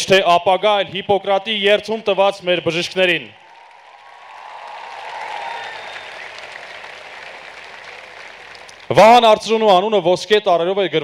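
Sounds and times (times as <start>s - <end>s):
large audience applauding: 3.3s - 9.3s.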